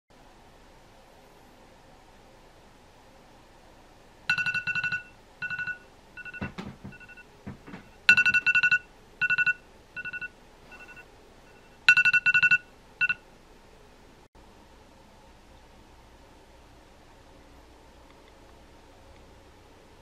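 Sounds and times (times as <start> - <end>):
phone alarm beeping: 4.3 - 13.2
handling knocks and rustles: 6.2 - 8.6.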